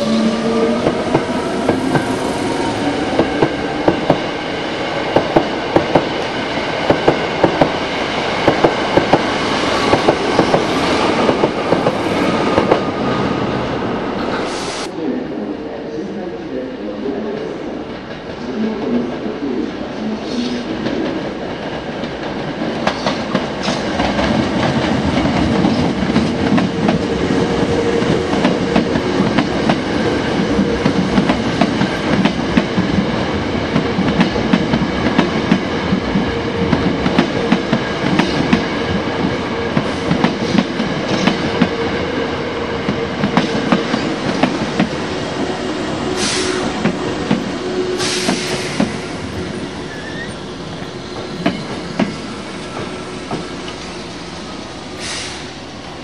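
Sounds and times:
train wheels rumbling on rail: 0:00.0 - 0:14.9, 0:17.4 - 0:56.0.

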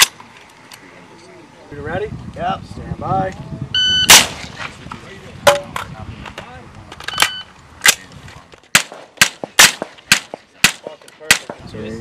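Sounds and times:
suppressed rifle shots: 0:04.1 - 0:04.6, 0:08.7 - 0:11.6.

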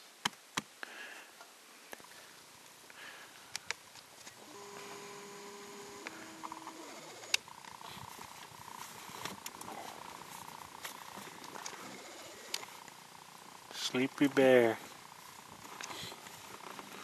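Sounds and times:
faint steady whine: 0:00.8 - 0:17.0
camera lens motor whirring: 0:04.4 - 0:13.6.

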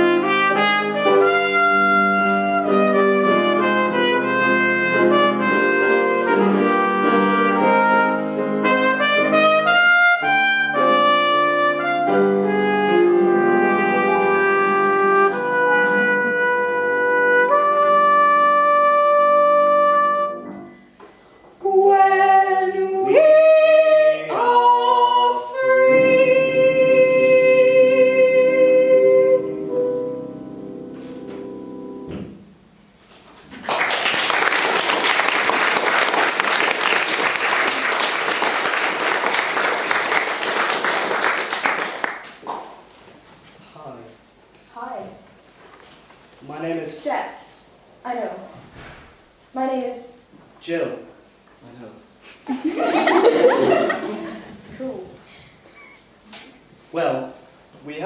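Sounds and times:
live brass music with trumpet: 0:00.0 - 0:20.8.

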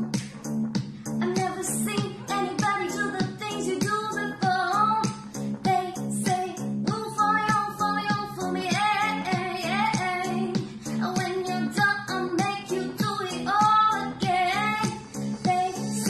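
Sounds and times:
backing track with beat: 0:00.0 - 0:16.0
woman singing pop song: 0:00.0 - 0:16.0.

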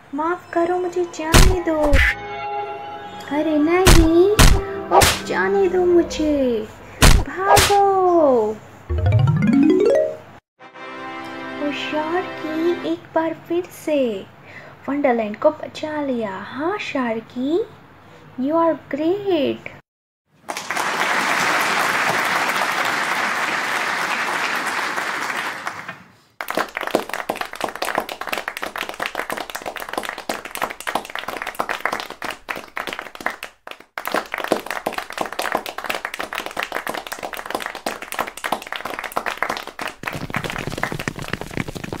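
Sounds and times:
audience clapping: 0:20.4 - 0:42.0.

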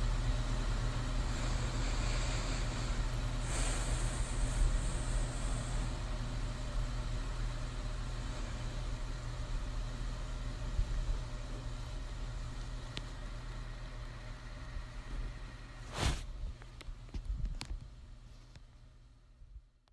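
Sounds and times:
low rumbling ambience: 0:00.0 - 0:19.8
light hiss: 0:12.4 - 0:16.3.

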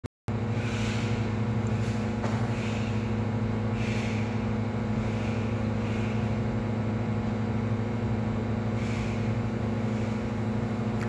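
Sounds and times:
steady low hum: 0:00.3 - 0:11.0.

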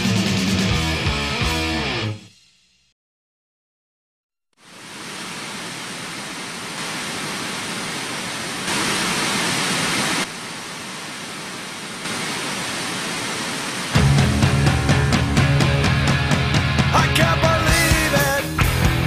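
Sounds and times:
steady hissing noise: 0:04.6 - 0:14.2.

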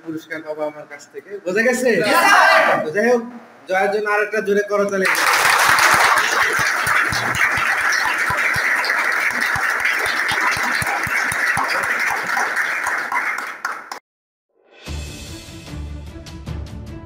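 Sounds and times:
crowd applauding: 0:05.0 - 0:14.0.

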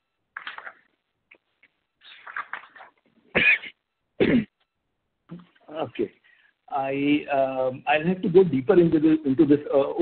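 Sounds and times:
man clearing his throat: 0:03.4 - 0:04.6.

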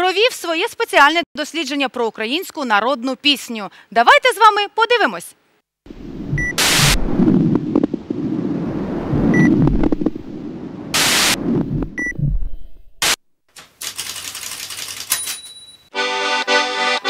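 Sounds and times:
rumbling crackling noise: 0:05.9 - 0:13.2
short high beeps: 0:06.4 - 0:06.6, 0:09.3 - 0:09.5
bursts of hiss: 0:06.6 - 0:07.0, 0:10.9 - 0:11.4
rapid typewriter-like clicking: 0:13.6 - 0:15.4.

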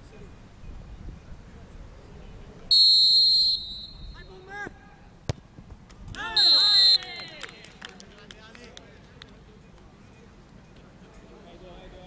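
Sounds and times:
referee's whistle: 0:02.7 - 0:04.5, 0:06.3 - 0:07.1
ball kicked thud: 0:05.2 - 0:05.8.

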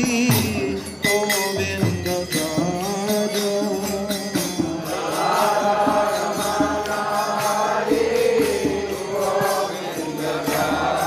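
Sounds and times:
hand percussion beat: 0:00.0 - 0:11.0
group chanting a mantra: 0:04.3 - 0:11.0.

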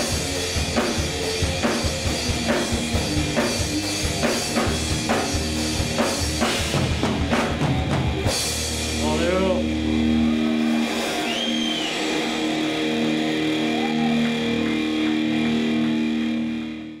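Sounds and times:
held electric guitar tones droning: 0:09.6 - 0:17.0
audience shouting and whooping: 0:09.9 - 0:16.8.

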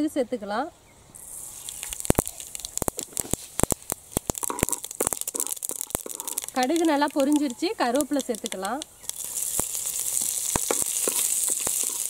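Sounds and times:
light oil sizzle: 0:01.2 - 0:12.0
mustard seeds popping in hot oil: 0:01.2 - 0:12.0.

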